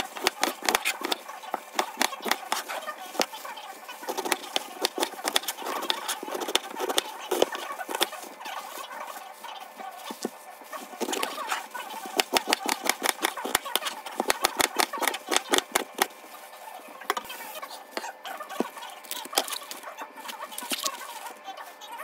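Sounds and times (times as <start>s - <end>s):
knife chopping cabbage on board: 0.0s - 3.3s, 4.0s - 8.2s, 10.1s - 16.2s.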